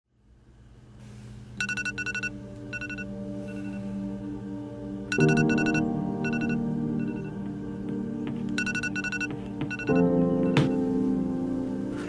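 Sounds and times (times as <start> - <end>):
smartphone alarm trilling beeps: 1.6 - 3.8, 5.1 - 7.3, 8.6 - 10.0
low music drone: 1.8 - 12.0.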